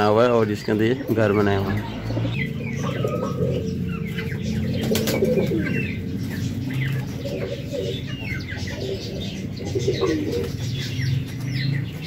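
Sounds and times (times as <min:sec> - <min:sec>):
birds chirping: 0:00.0 - 0:12.0
pigeons cooing: 0:00.0 - 0:12.0.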